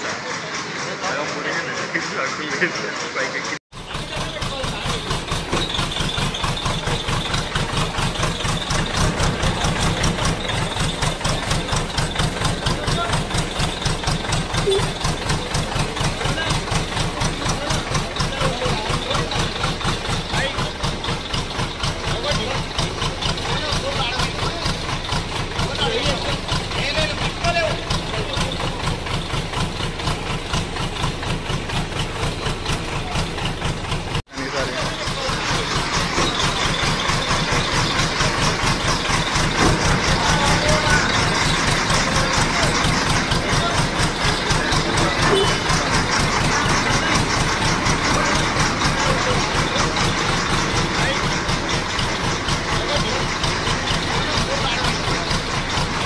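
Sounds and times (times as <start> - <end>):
diesel engine idling: 0.0 - 56.0.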